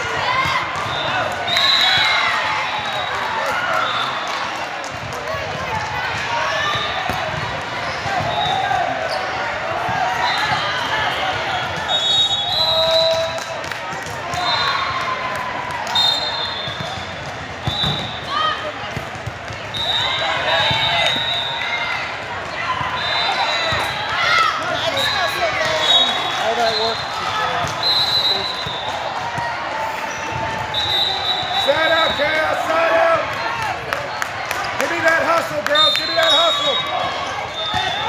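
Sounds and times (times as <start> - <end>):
volleyball hits: 15.5 - 24.3.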